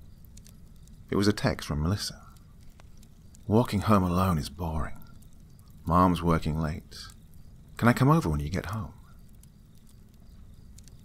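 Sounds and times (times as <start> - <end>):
irregular crackling ticks: 0.0 - 11.0.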